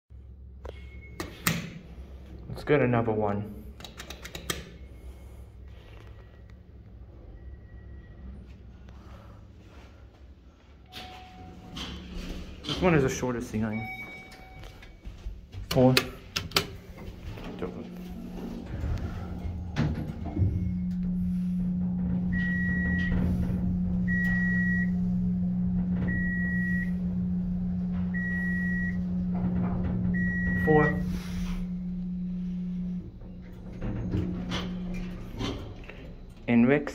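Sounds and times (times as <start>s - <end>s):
elevator hum: 0.2s - 36.9s
faint high beep: 7.3s - 8.3s, 13.7s - 14.7s.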